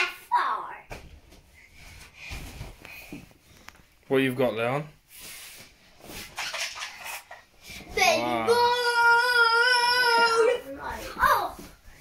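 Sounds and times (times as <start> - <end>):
girl singing high note: 8.5 - 11.4.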